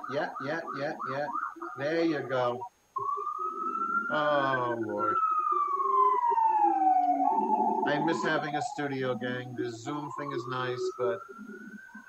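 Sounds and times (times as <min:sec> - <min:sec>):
emergency vehicle siren wailing: 0:00.0 - 0:12.0.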